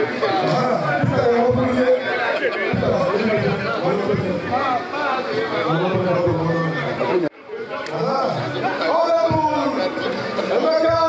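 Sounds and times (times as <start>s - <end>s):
overlapping chatter: 0.0s - 11.0s.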